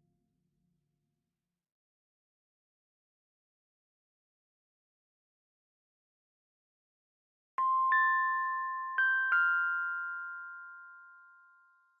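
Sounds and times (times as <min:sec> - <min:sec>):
bell-like chime chord: 0:07.6 - 0:12.0.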